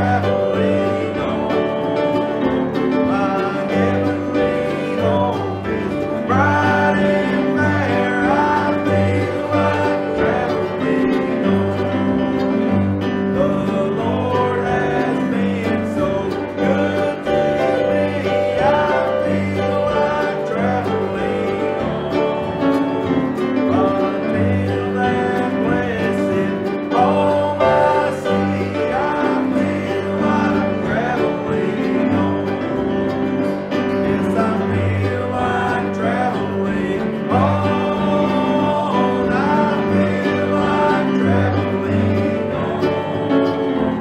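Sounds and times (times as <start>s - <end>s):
acoustic guitar: 0.0s - 44.0s
bluegrass gospel band playing: 0.0s - 44.0s
man singing: 0.0s - 44.0s
mandolin: 0.0s - 44.0s
upright bass: 0.0s - 44.0s.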